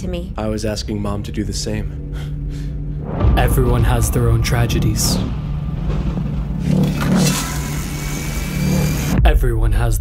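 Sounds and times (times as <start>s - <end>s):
low rumbling drone: 0.0s - 9.3s.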